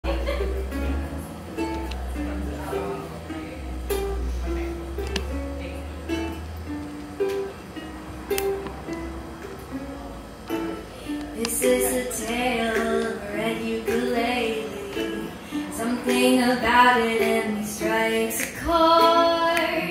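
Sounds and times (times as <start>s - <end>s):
ukulele picked melody: 0.0s - 19.9s.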